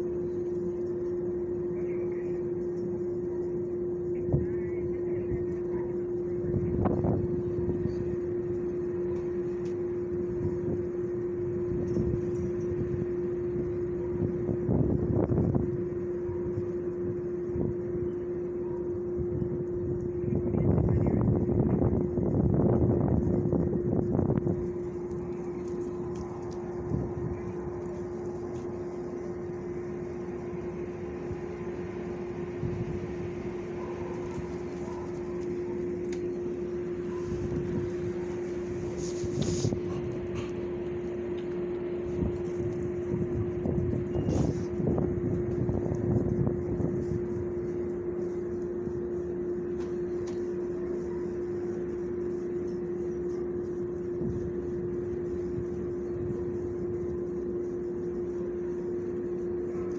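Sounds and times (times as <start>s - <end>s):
steady machine hum: 0.0s - 59.9s
noisy swells: 19.6s - 59.9s.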